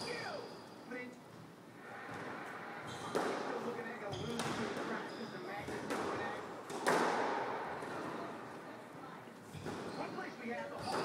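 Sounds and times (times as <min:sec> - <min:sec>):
squash ball cracks: 0:05.7 - 0:08.1.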